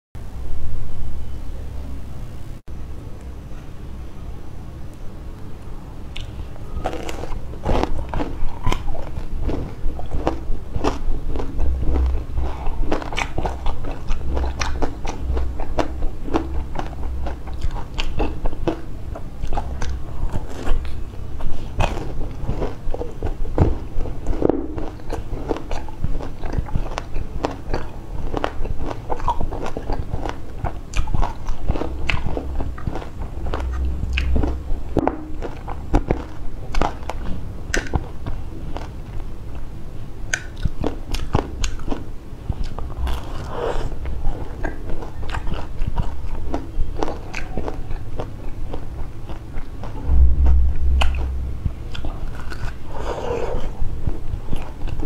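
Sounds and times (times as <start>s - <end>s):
chewing: 6.1s - 39.7s, 40.3s - 55.0s.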